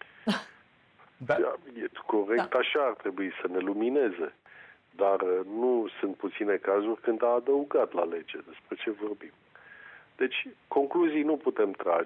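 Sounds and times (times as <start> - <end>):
man speaking: 1.2 - 4.4, 5.0 - 9.3.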